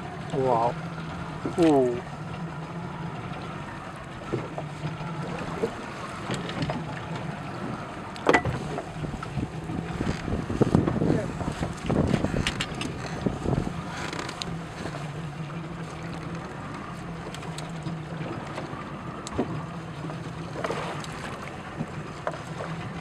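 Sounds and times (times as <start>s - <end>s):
boat engine humming: 0.0s - 23.0s
water around hull: 0.0s - 23.0s
wind: 0.0s - 23.0s
knocks and clatter on board: 4.2s - 7.3s, 8.2s - 8.9s, 10.0s - 15.0s, 19.3s - 19.6s.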